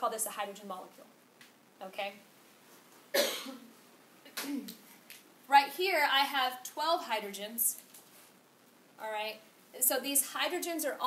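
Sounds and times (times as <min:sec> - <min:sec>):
woman coughing: 0:03.1 - 0:03.7.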